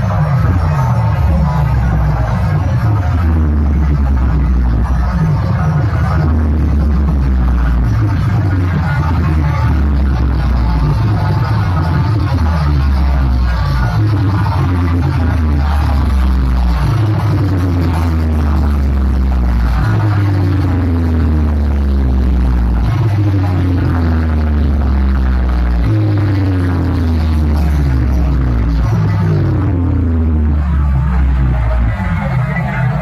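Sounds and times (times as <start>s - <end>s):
loud electronic dance music: 0.0s - 33.0s.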